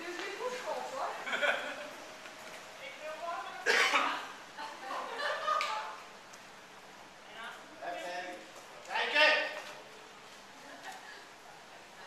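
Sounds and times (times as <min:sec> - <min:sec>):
loud cough: 0:03.6 - 0:04.2.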